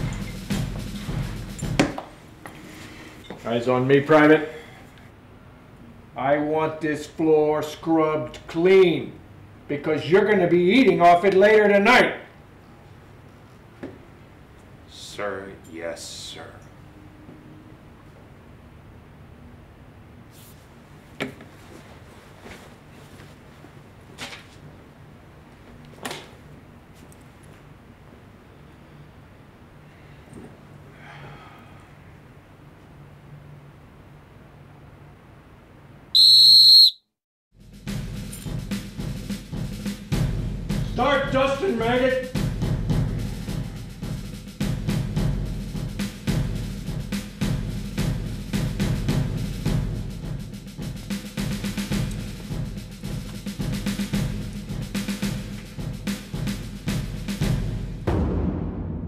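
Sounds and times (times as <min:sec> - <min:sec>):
music with heavy drum hits: 0:00.0 - 0:02.0, 0:37.6 - 0:59.0
shrill whistle blast: 0:36.2 - 0:37.2.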